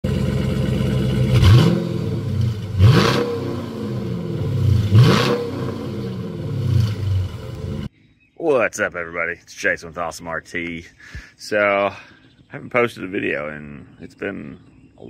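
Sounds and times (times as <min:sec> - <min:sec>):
car engine idling and revving: 0:00.0 - 0:07.9.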